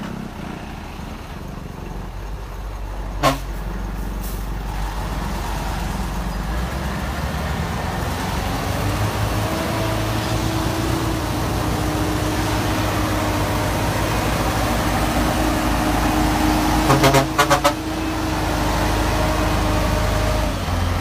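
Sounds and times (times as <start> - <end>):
heavy truck engine drone: 0.0 - 21.0.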